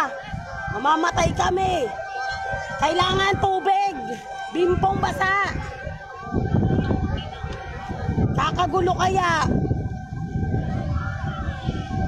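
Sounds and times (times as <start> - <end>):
distant emergency siren: 0.0 - 12.0
low wind rumble: 0.0 - 12.0.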